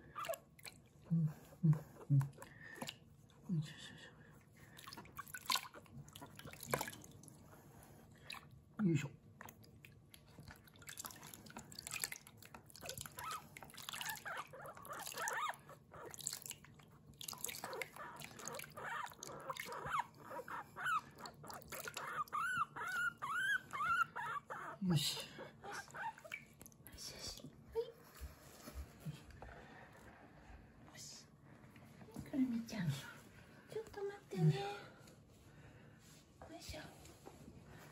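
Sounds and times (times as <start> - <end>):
water dripping and splashing: 4.7 - 7.3, 9.4 - 15.4, 16.1 - 19.8
guinea pig squeaking: 13.1 - 16.2, 17.6 - 26.3.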